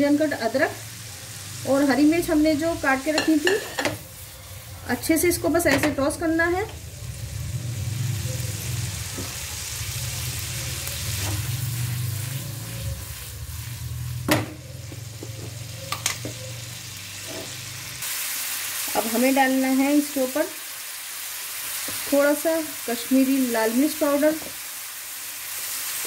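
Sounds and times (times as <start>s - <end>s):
food sizzling in a pan: 0.0s - 26.0s.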